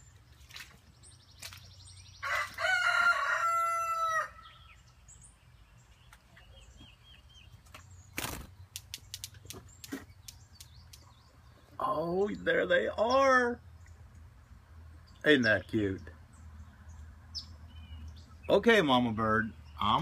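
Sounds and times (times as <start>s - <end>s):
rooster crowing: 2.2s - 4.6s.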